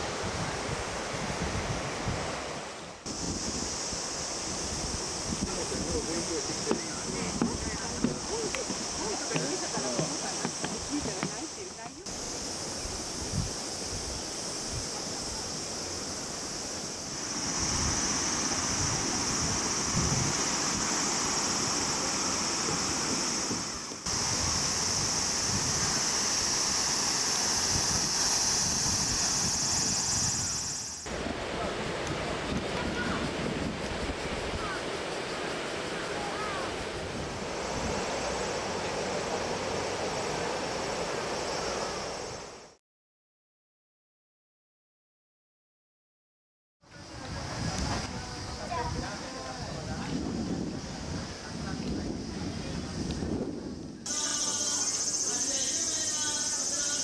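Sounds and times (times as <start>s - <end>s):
wind on microphone: 0.0s - 35.1s, 47.0s - 54.2s
cicadas droning: 3.1s - 31.7s, 34.0s - 42.8s, 46.9s - 57.0s
faint voices: 5.4s - 12.1s, 54.1s - 57.0s.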